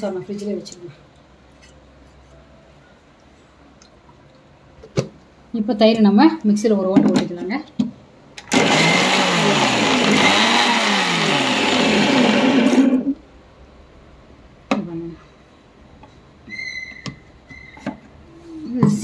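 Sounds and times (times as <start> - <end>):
mixer grinder running: 8.4 - 13.2.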